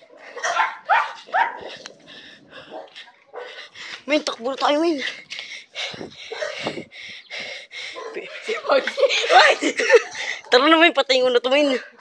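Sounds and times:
dog barking: 0.3s - 1.8s, 2.6s - 3.6s, 6.3s - 6.7s, 8.0s - 8.6s.

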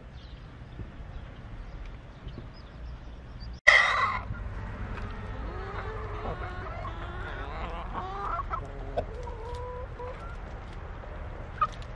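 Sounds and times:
chickens clucking: 3.7s - 10.8s.

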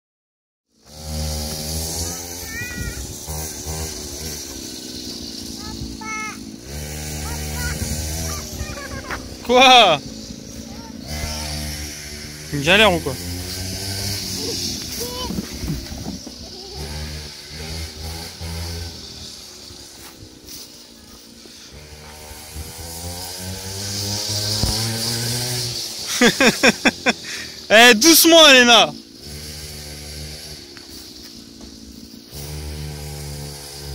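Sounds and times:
small quad engine revving: 0.7s - 33.9s.

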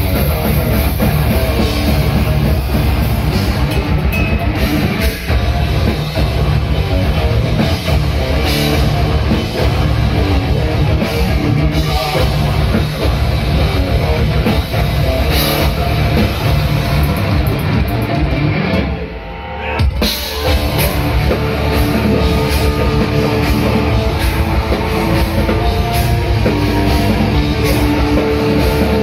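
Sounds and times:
heavy distorted guitars: 0.0s - 29.0s
pounding drum kit: 0.0s - 29.0s.

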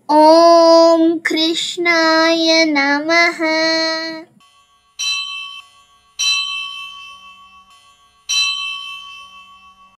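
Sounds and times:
high-pitched bell struck: 4.4s - 10.0s.

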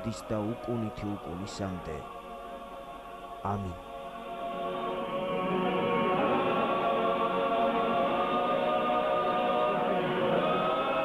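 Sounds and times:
choir singing chant: 0.0s - 11.0s.

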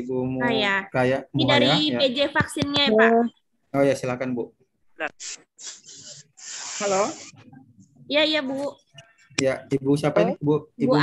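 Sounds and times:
woman speaking: 1.4s - 3.3s, 8.0s - 9.0s.

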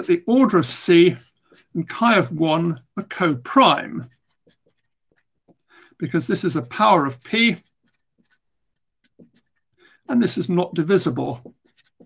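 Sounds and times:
marker scratching on paper: 0.0s - 12.0s.

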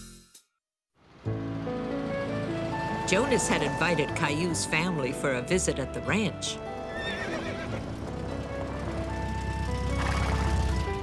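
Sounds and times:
cartoon background music: 1.5s - 11.0s
horse whinnying: 6.9s - 7.9s, 10.0s - 10.6s.

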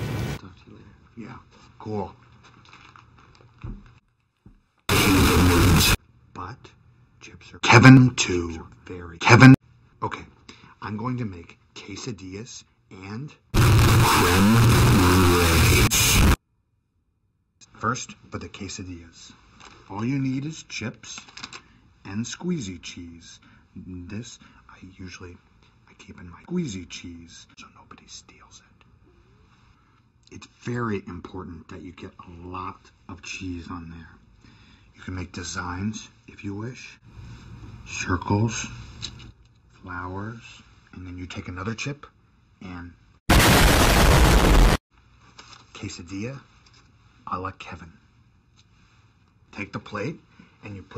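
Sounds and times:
harsh blast of noise: 4.9s - 6.0s, 13.6s - 16.4s, 43.3s - 44.8s.

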